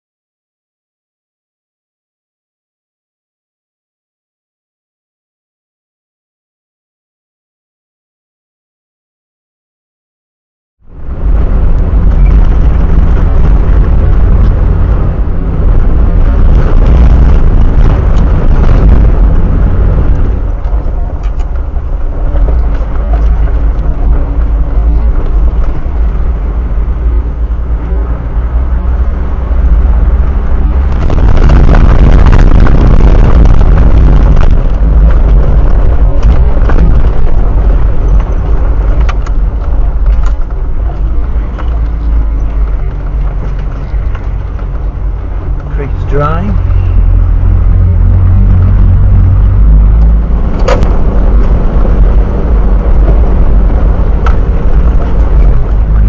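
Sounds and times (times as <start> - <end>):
engine and tyres on gravel: 10.8 - 56.0.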